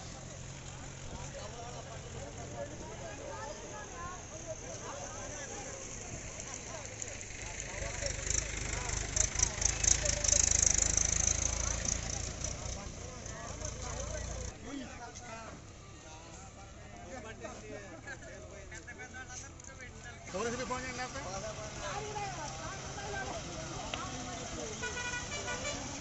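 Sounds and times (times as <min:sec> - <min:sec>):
faint voices talking: 0:00.0 - 0:26.0.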